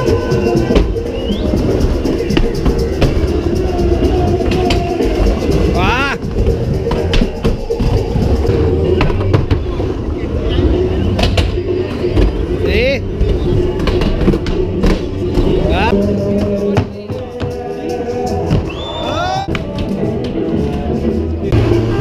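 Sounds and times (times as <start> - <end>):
background music: 0.0 - 22.0
crowd voices: 0.0 - 22.0.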